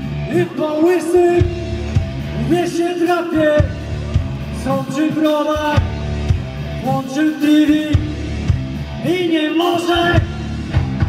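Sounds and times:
rock band playing: 0.0 - 11.0
person singing: 0.3 - 1.7, 2.4 - 6.0, 6.8 - 8.3, 9.0 - 11.0.

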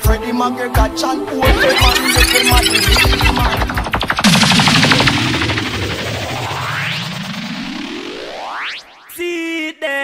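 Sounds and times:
machine-gun fire effect: 1.4 - 7.6
pulsing tone sweeping upward: 1.4 - 9.2.

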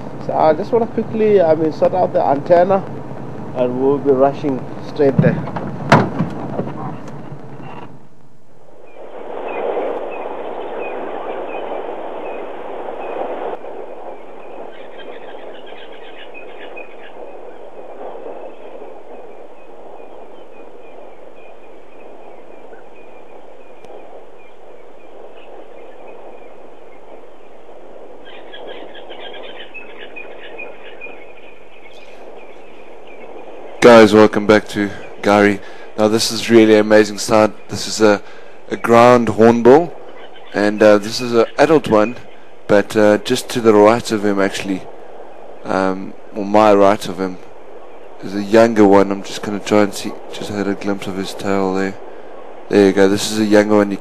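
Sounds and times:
outdoor background hiss: 0.0 - 54.0
faint high chirping: 14.0 - 37.9.

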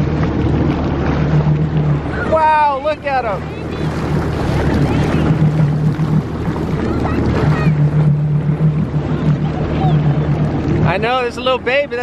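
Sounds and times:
water splashing: 0.0 - 12.0
watercraft engine humming: 0.0 - 12.0
wind on microphone: 0.0 - 12.0.

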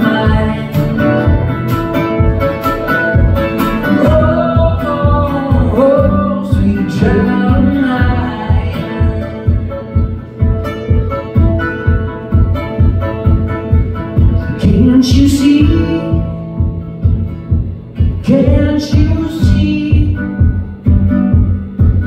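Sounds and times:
man singing: 0.0 - 1.5, 2.9 - 10.2, 14.3 - 16.7, 18.1 - 20.6
acoustic guitar strumming: 0.0 - 22.0.

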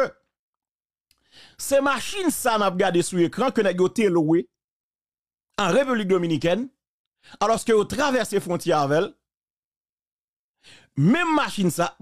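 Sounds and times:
faint breath in: 1.2 - 1.6, 10.6 - 11.0
man speaking: 1.6 - 4.6, 5.6 - 6.8, 11.0 - 12.0.

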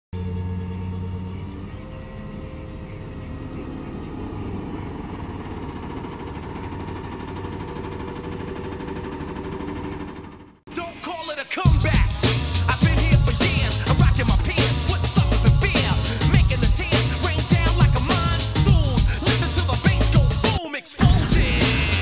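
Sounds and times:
tow truck engine running: 0.2 - 22.0
hydraulic winch pulling: 2.5 - 10.5.

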